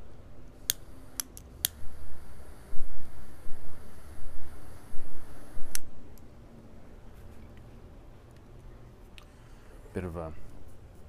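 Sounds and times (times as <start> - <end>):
lighter clicking: 0.6 - 6.3
torch jet flame rushing: 0.7 - 6.2.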